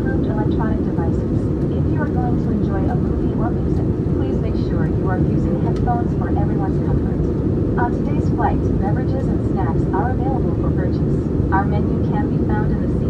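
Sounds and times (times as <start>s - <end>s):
airplane cabin engine rumble: 0.0s - 13.0s
announcement over pa: 0.0s - 13.0s.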